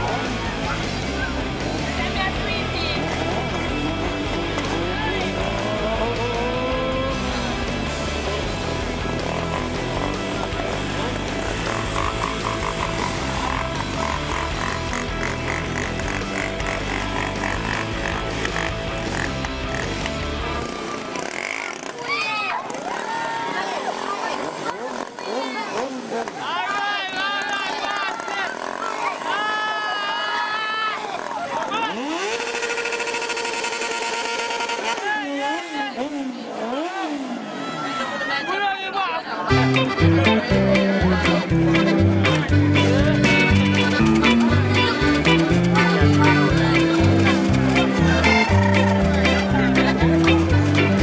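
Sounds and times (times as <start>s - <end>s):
music with heavy bass: 0.0s - 20.7s, 39.5s - 51.0s
small motorcycle engine revving: 0.1s - 26.4s, 27.5s - 29.8s, 31.0s - 38.3s.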